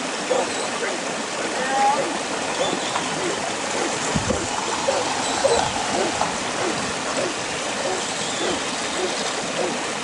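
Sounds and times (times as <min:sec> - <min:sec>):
distant dog barking: 0:00.3 - 0:00.5, 0:02.5 - 0:09.8
wind buffeting microphone: 0:02.7 - 0:09.6
wind noise: 0:03.7 - 0:09.1.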